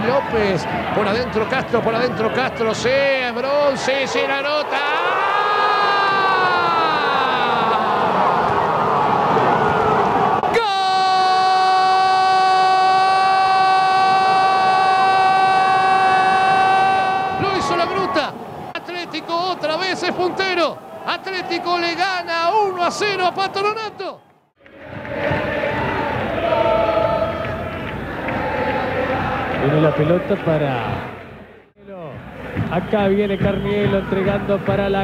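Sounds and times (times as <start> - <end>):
excited shouted commentary: 0.0 - 8.3, 10.4 - 24.2.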